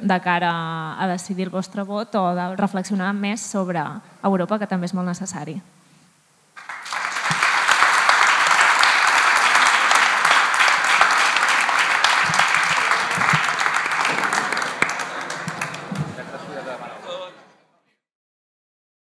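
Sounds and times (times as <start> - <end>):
audience clapping: 6.6 - 17.3.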